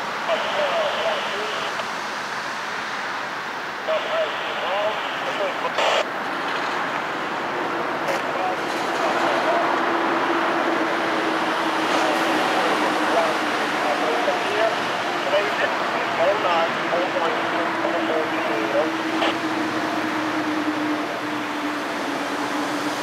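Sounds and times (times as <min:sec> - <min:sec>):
diesel locomotive engines: 0:00.0 - 0:23.0
steady hum: 0:03.8 - 0:06.1.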